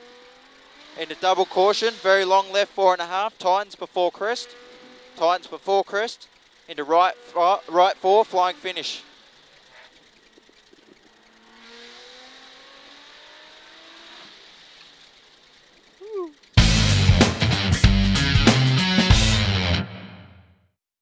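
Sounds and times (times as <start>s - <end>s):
car engine and cabin noise: 0.0s - 16.6s
loud music with strong beat: 16.6s - 19.9s.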